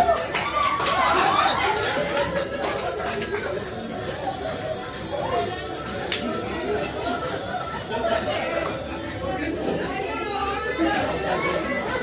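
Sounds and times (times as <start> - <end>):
crowd hubbub of conversation: 0.0 - 12.0.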